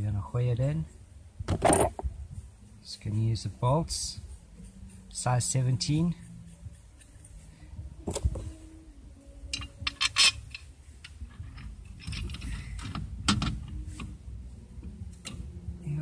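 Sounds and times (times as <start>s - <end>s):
metallic clicks of bolts and tools: 9.4s - 14.2s.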